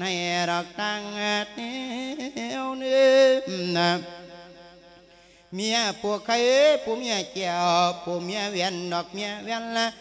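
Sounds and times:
man chanting through amplification: 0.0s - 10.0s.

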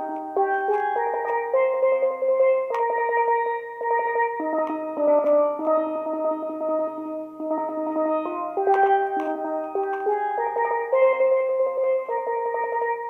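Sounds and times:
steel pan melody with rolls: 0.0s - 13.0s.

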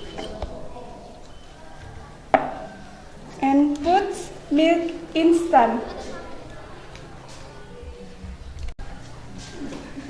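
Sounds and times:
person speaking: 3.4s - 7.2s.

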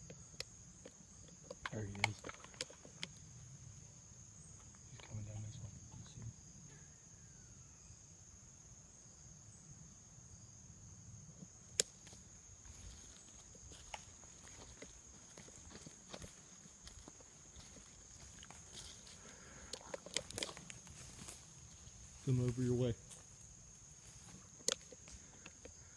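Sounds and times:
crickets droning: 0.0s - 25.9s
footsteps crackling in dry leaves: 12.7s - 23.4s.

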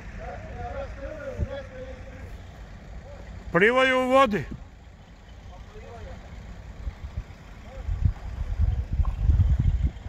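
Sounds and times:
faint distant voices: 4.9s - 9.0s
wind buffeting microphone: 6.8s - 10.0s.

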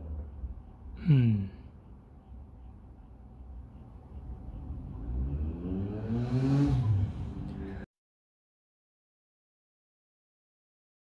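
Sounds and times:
vehicle engine accelerating: 4.1s - 7.9s.

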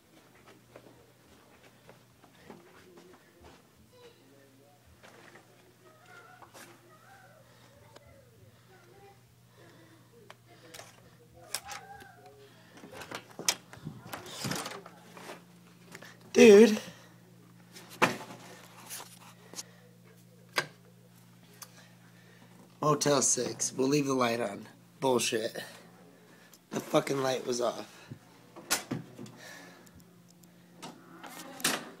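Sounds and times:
low electrical hum: 0.0s - 32.0s
murmuring voices: 0.8s - 16.3s.

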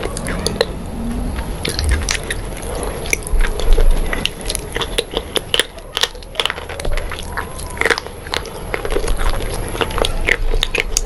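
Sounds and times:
close chewing with crunches: 0.0s - 11.0s.

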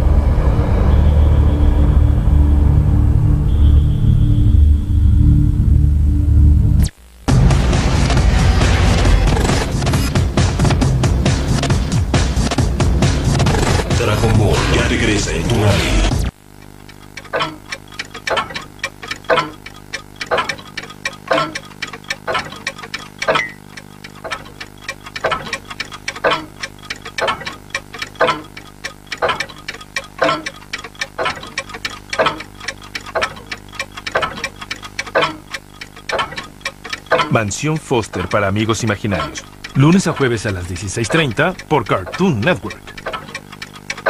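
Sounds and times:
loud music and sound effects: 5.0s - 16.3s
cartoon clock ticking: 9.1s - 44.0s.

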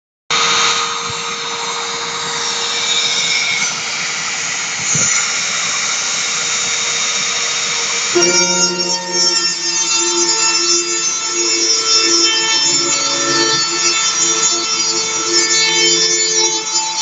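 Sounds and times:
rotary tool high-pitched whine: 0.3s - 17.0s.

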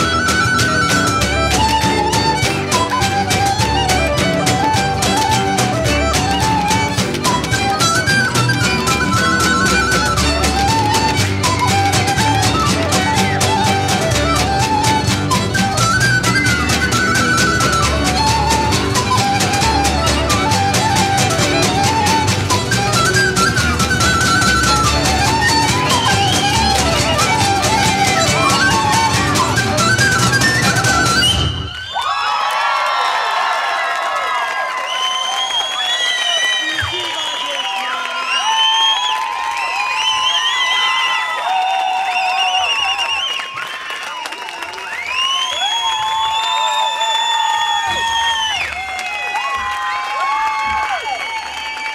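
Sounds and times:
folk band playing: 0.0s - 31.8s
audience cheering and whooping: 0.0s - 51.9s
applause: 31.7s - 51.9s.

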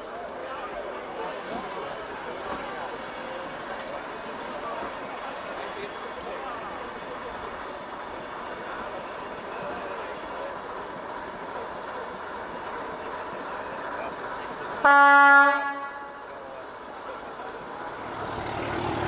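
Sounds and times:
murmur of voices: 0.0s - 19.0s
locomotive horn: 14.8s - 16.3s.

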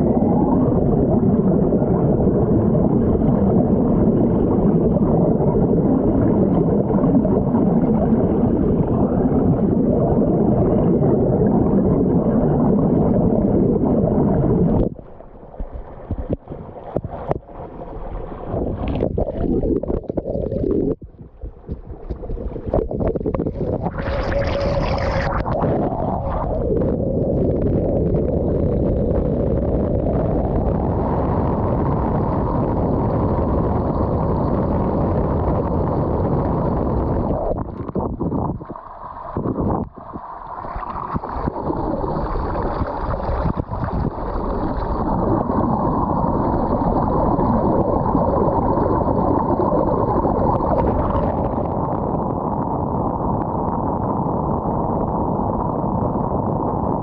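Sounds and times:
stream water gurgling underwater: 0.0s - 57.0s.

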